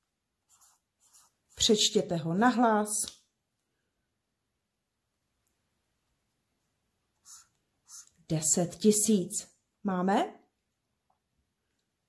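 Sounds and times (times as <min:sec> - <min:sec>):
highlighter scratching paper: 0:00.4 - 0:02.0, 0:07.2 - 0:08.3.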